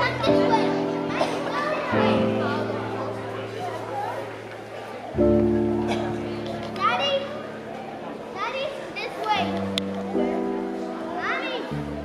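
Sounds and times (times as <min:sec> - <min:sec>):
music with long held chords: 0:00.0 - 0:08.0, 0:09.5 - 0:12.0
children calling out: 0:00.0 - 0:12.0.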